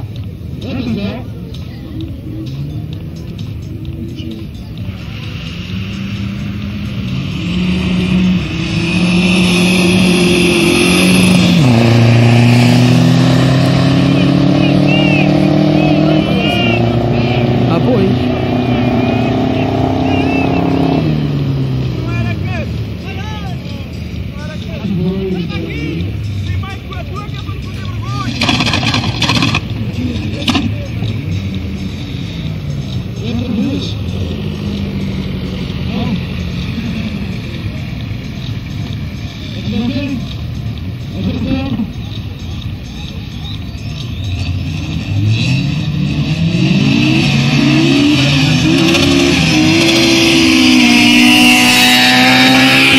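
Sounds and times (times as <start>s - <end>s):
crowd voices: 0.0s - 52.9s
car engine accelerating hard: 3.9s - 42.2s, 43.9s - 52.9s.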